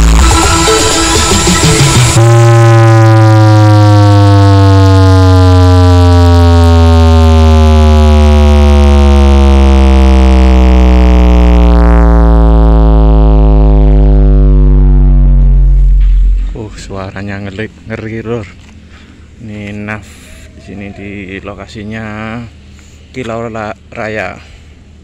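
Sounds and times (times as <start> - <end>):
loud gliding bass tone: 0.0 - 18.7.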